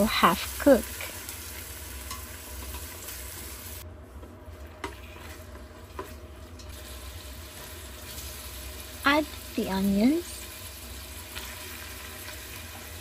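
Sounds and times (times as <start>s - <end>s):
pork sizzling in oil: 0.0s - 3.9s, 4.5s - 13.0s.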